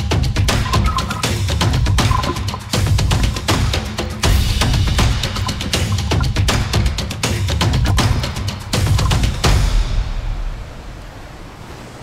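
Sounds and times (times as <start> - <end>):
surf washing on shore: 0.5 - 12.0.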